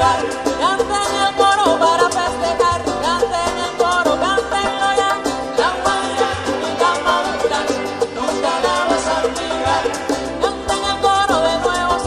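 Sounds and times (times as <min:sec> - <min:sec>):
strummed acoustic guitars: 0:00.0 - 0:12.0.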